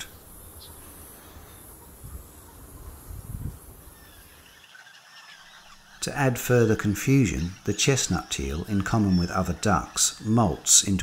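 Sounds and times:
distant bird calls: 0.0 - 11.0
high insect drone: 0.0 - 11.0.

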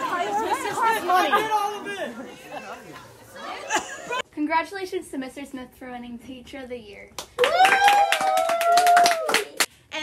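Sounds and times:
excited chatter of voices: 0.0 - 4.2.

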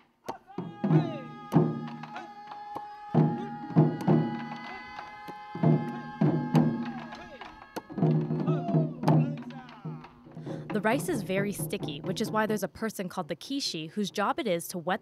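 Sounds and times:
voices calling out: 0.3 - 12.6
taiko drums beating: 0.5 - 12.6.

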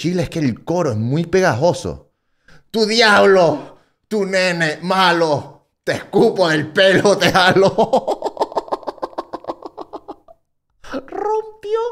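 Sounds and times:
man laughing: 6.8 - 10.4.

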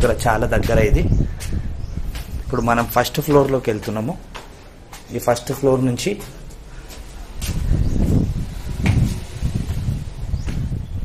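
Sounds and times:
footsteps on stone stairs: 0.0 - 10.9
wind buffeting microphone: 0.0 - 11.0.

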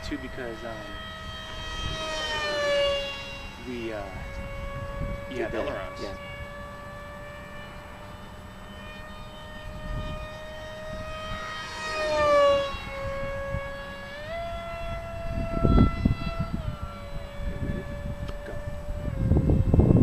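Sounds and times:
model plane motor whining: 0.0 - 20.0.

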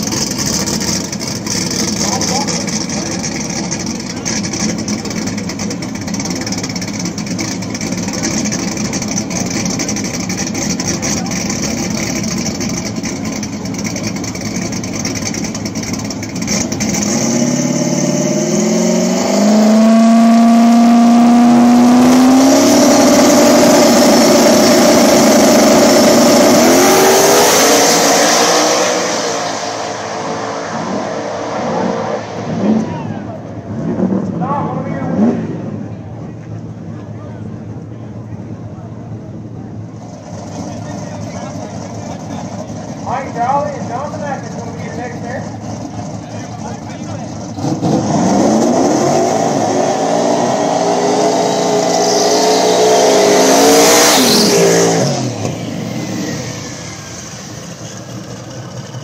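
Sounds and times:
race car engines idling: 0.0 - 27.4, 28.5 - 48.6, 54.3 - 59.0
engine revving to high rpm: 0.0 - 35.9, 40.2 - 59.0.

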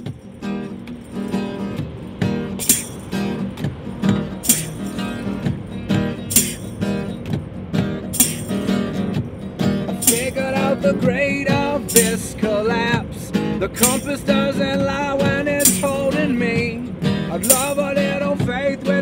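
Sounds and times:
acoustic guitar strumming: 0.0 - 19.0
tambourine strikes: 0.0 - 19.0.

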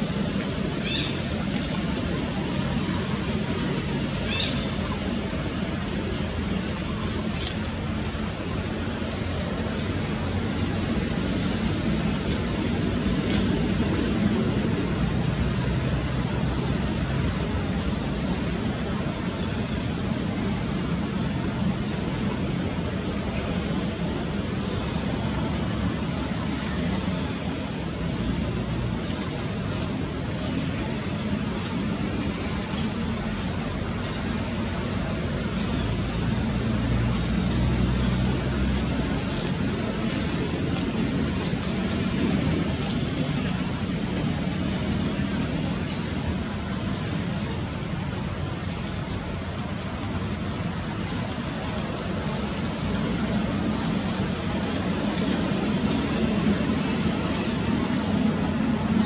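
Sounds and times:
low rumbling background noise: 0.0 - 59.0.

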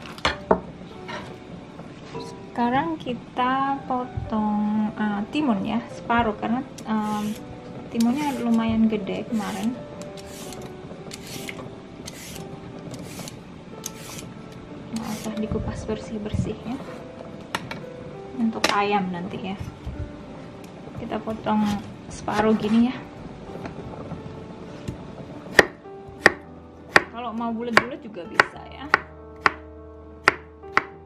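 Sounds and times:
faint background music: 0.0 - 31.0
vegetable peeler scraping cucumber: 7.0 - 7.4, 8.0 - 8.6, 9.3 - 14.3, 15.0 - 15.4
knife chopping on wooden board: 25.6 - 27.1, 27.8 - 29.6, 30.2 - 30.9.

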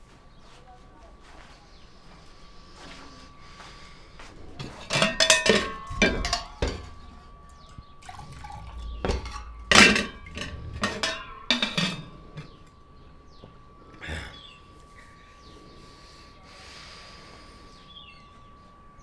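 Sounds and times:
metal tumbler clanking on vessel: 4.6 - 12.8
water pouring: 8.0 - 11.6.

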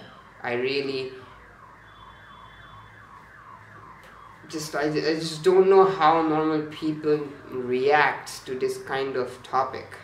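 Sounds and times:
electronic alarm tone sweeping down: 0.0 - 8.0.

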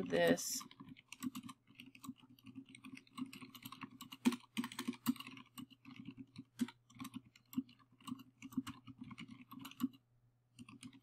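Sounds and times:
keyboard typing clicks: 0.1 - 11.0.

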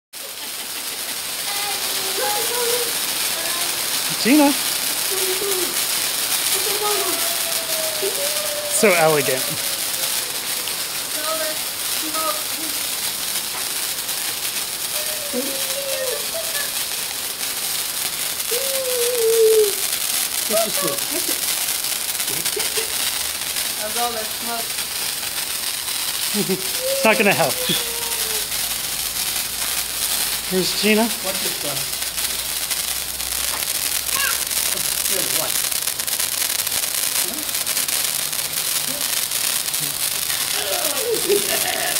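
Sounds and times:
heavy rain: 0.2 - 41.9
sparkler fizzing and crackling: 0.2 - 41.9.

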